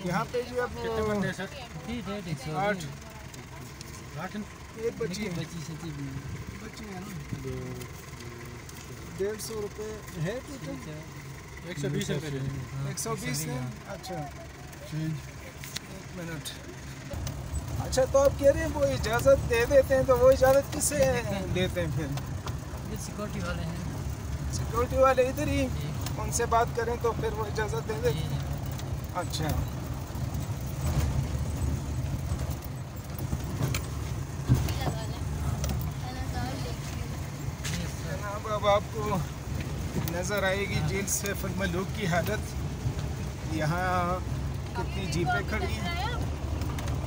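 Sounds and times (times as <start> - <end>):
car engine running: 0.0 - 47.0
tyres on gravel: 0.0 - 47.0
vehicle rattles and knocks: 0.0 - 47.0.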